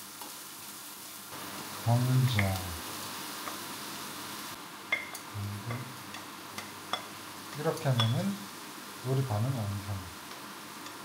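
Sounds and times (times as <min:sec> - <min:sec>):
vegetables sizzling in a frying pan: 0:00.0 - 0:11.0.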